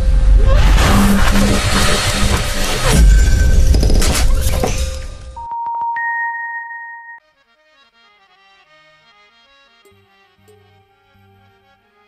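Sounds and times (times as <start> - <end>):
shattering crash: 0.6 - 5.3
electronic beep tone: 5.4 - 7.2.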